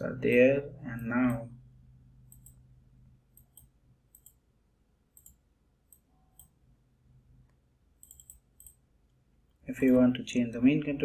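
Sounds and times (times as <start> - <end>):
low steady hum: 0.0 - 11.0
computer mouse clicks: 2.3 - 2.6, 3.3 - 4.5, 5.1 - 6.6, 7.4 - 9.2.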